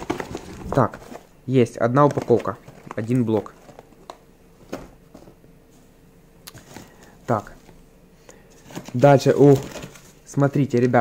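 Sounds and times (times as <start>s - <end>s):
handling cardboard boxes: 0.0s - 1.4s, 2.0s - 5.4s, 6.5s - 7.8s, 8.4s - 11.0s.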